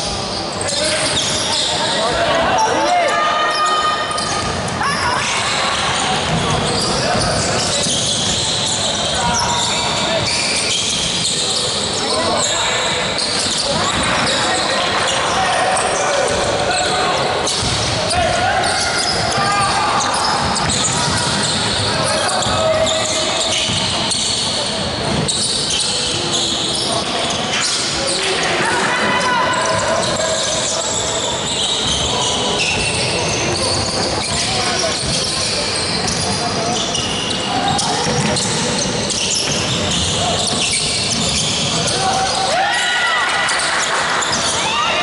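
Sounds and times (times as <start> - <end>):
people shouting in gym: 0.0 - 45.0
ball bouncing on wooden court: 6.1 - 8.4, 17.5 - 18.4, 19.0 - 22.6, 23.5 - 24.3.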